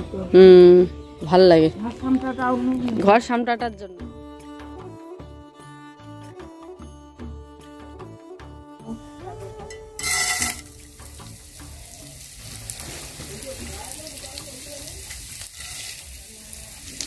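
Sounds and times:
grains sizzling in hot oil: 10.0s - 17.0s
small crackles: 12.4s - 17.0s.

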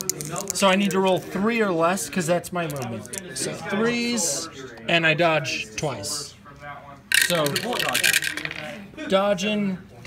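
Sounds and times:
dice rattling onto table: 7.1s - 8.7s.

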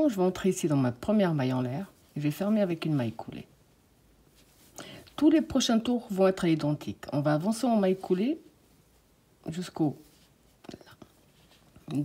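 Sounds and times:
woman speaking: 0.0s - 3.6s, 5.2s - 8.5s, 9.4s - 11.0s.

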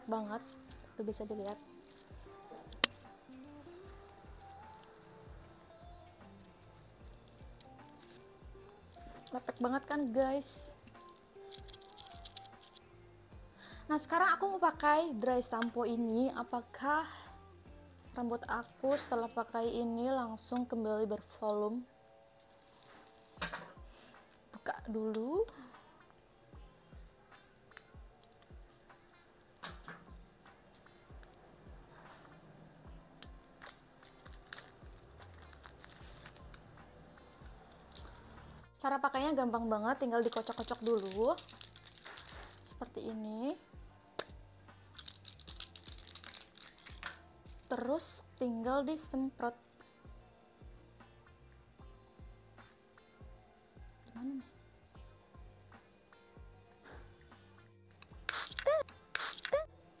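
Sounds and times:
background music with beat: 0.0s - 14.2s, 17.0s - 19.8s, 23.2s - 59.8s
plastic clicks and crinkling: 10.9s - 12.8s, 22.4s - 23.8s, 33.2s - 36.5s, 40.2s - 42.8s, 45.0s - 48.0s
aerosol can spraying: 58.2s - 59.7s.

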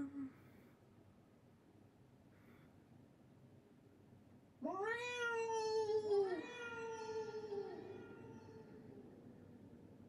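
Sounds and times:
cartoon cat meowing: 4.6s - 8.9s.

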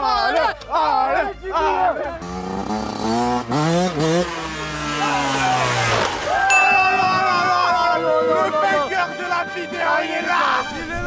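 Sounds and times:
distant dirt bike engine: 2.2s - 8.5s
man shouting excitedly: 6.4s - 11.0s.

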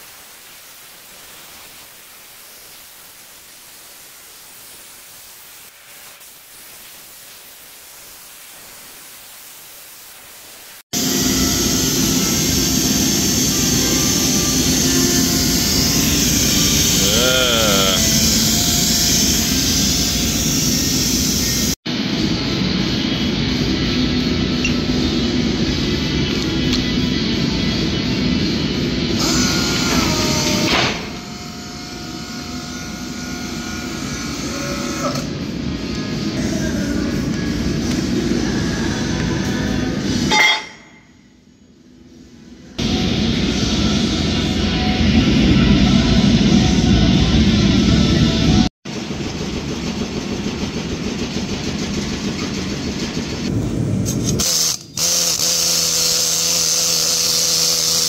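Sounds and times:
plasma cutter torch hiss: 0.0s - 21.8s, 53.9s - 58.0s
loud music: 11.0s - 19.6s.

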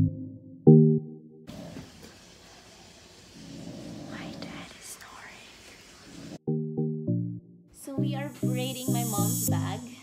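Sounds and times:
woman whispering softly: 4.1s - 5.6s.

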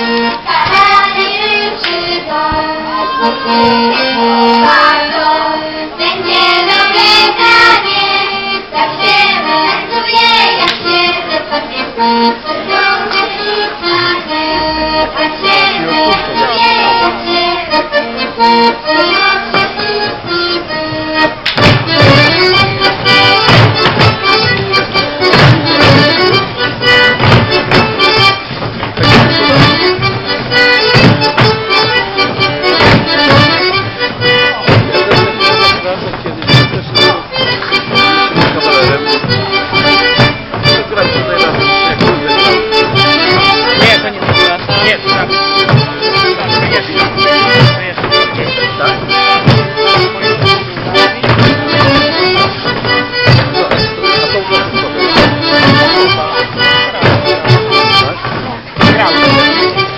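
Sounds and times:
accordion folk dance tune: 0.0s - 59.9s
rhythmic low thumps: 2.3s - 59.9s.

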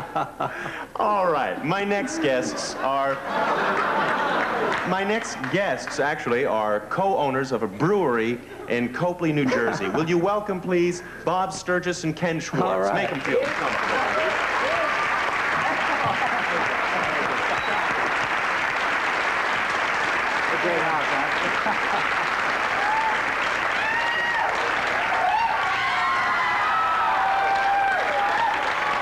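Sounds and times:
audience applauding: 2.0s - 6.0s, 12.6s - 29.0s
voices: 4.8s - 14.4s.

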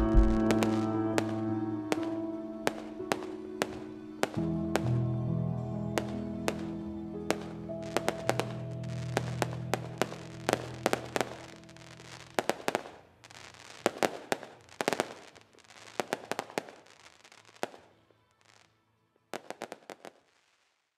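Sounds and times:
fireworks bangs and crackles: 0.0s - 5.0s, 6.0s - 20.9s
music: 0.0s - 12.9s, 15.9s - 20.0s.

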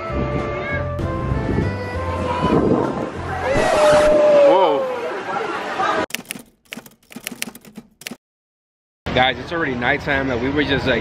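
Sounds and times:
typewriter key clacks: 6.1s - 8.2s.

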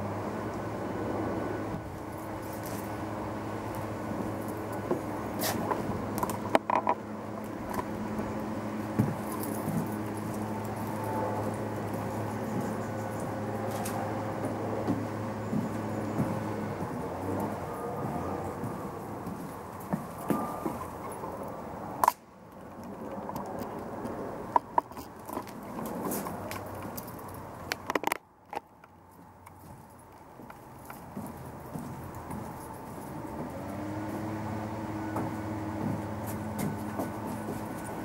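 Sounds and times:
sharp clicks and knocks: 4.9s - 7.0s, 22.0s - 29.8s.

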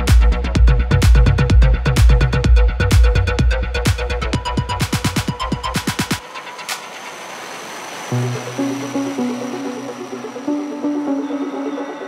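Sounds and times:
kick drum: 0.0s - 6.2s
stepping bass synth melody: 0.0s - 6.4s, 8.1s - 12.0s
noisy synth wash: 3.7s - 12.0s.

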